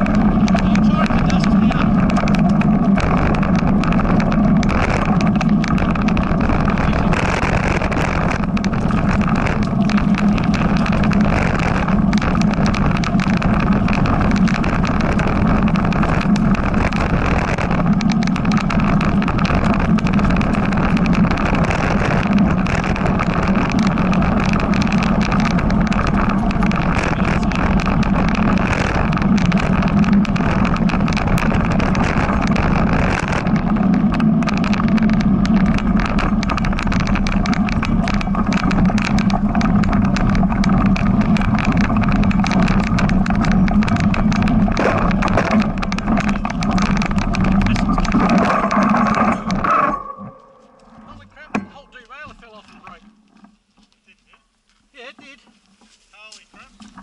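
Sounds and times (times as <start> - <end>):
bike rattling and knocking: 0.0 - 57.0
bike tyres rumbling on dirt: 0.0 - 57.0
wind: 0.0 - 57.0.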